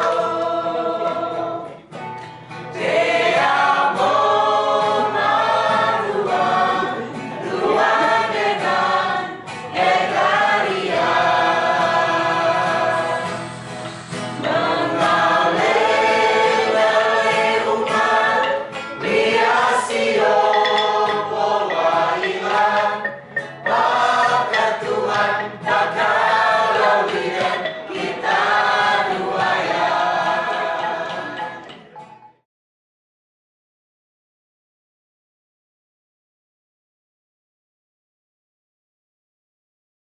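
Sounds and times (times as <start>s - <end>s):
choir singing: 0.0s - 1.9s, 2.7s - 32.0s.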